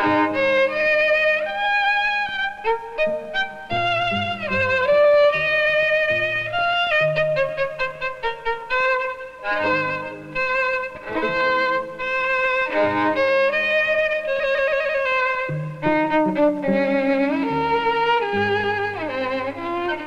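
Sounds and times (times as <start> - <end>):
violin melody with sliding notes: 0.0 - 20.0.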